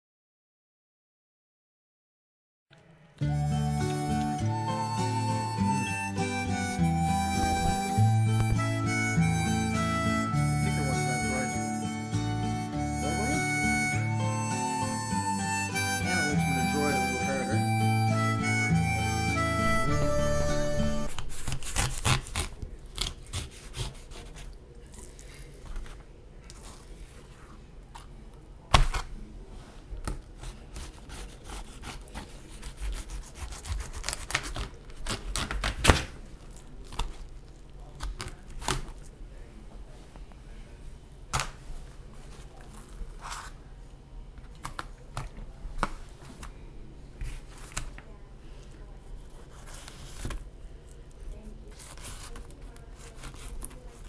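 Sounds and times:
instrumental music: 3.2 - 21.8
knife cutting raw fish: 21.1 - 24.5, 30.4 - 36.0.

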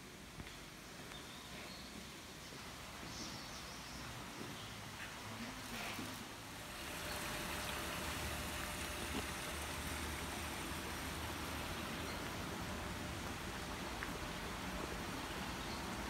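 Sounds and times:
running water rushing: 6.1 - 16.0.

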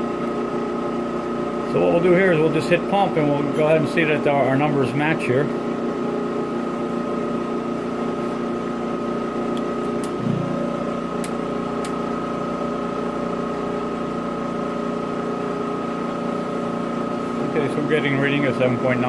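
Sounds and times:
pump humming and whining: 0.0 - 19.0.

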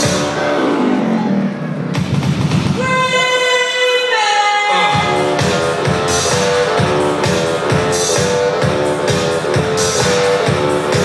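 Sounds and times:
deep bass: 0.0 - 2.8, 4.9 - 11.0.

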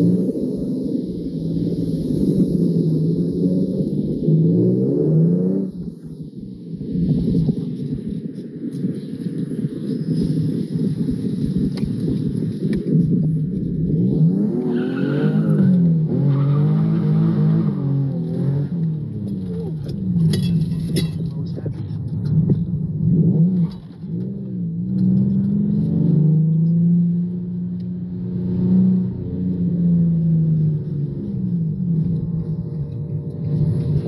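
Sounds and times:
car engine revving: 0.0 - 8.1, 12.8 - 34.0.

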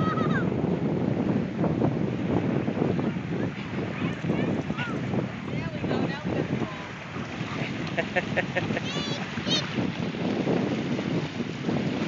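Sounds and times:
small waves washing on sand: 0.0 - 12.0
wind buffeting microphone: 0.0 - 12.0.

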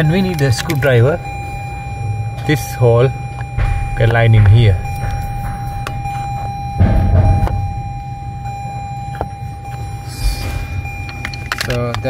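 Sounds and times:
steady thin whine: 3.5 - 12.0
short rumbling knock: 3.6 - 8.6.

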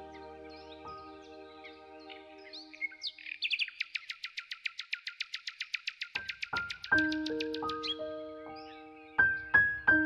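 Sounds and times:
bird trilling: 2.8 - 8.0.

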